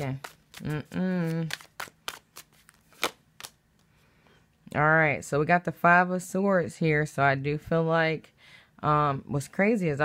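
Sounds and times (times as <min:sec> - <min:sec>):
cards being shuffled: 0:00.0 - 0:03.9.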